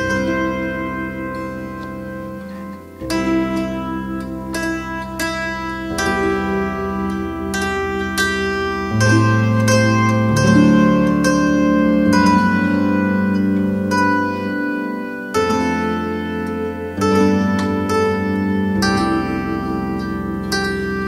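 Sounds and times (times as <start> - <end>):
zither music: 0.0 - 21.0.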